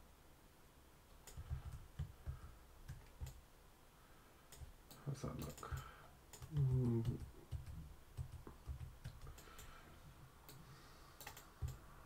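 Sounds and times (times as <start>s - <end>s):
mouse and keyboard clicks: 4.5s - 9.7s, 11.2s - 11.8s.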